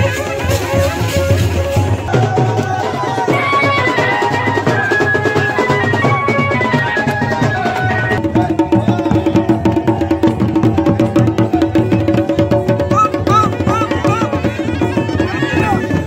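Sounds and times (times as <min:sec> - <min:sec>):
drums beaten fast: 0:00.0 - 0:16.0
wind instrument melody: 0:00.0 - 0:16.0
bagpipe drone: 0:12.8 - 0:16.0.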